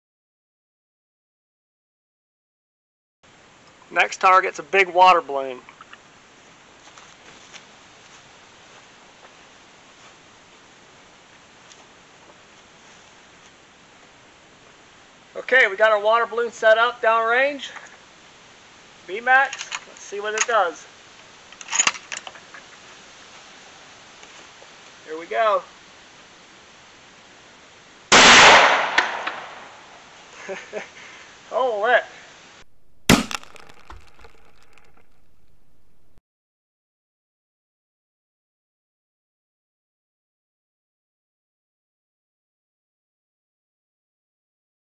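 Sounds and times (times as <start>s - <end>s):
faint steady hiss: 3.3s - 36.2s
light clicks and rustles: 19.5s - 20.6s, 21.5s - 23.0s
rifle shot crack: 28.1s - 29.8s, 32.7s - 36.2s.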